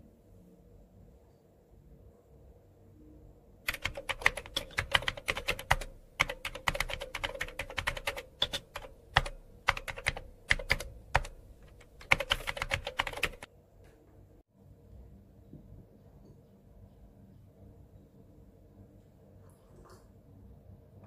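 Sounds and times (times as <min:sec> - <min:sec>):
laptop keyboard typing: 0:03.7 - 0:13.5.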